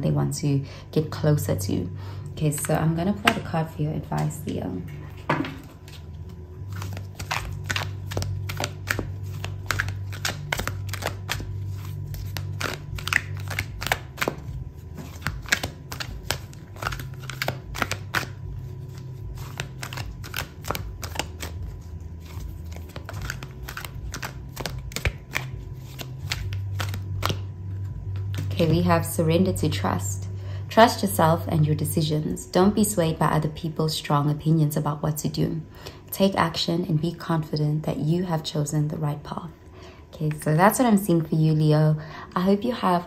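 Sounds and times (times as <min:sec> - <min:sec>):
low steady hum: 0:00.0 - 0:43.0
cards being shuffled: 0:05.1 - 0:28.9.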